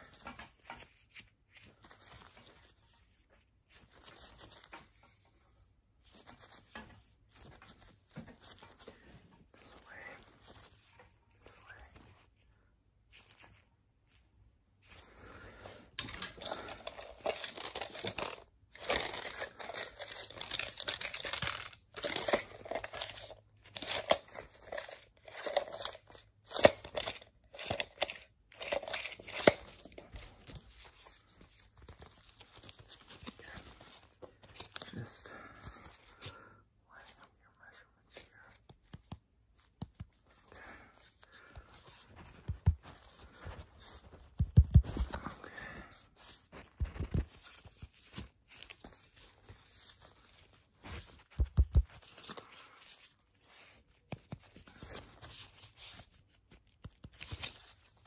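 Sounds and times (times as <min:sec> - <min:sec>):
rustling and crinkling handling: 0:00.0 - 0:58.0.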